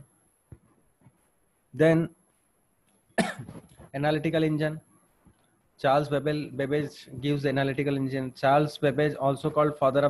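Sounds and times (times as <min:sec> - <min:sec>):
man coughing: 0:03.2 - 0:03.6.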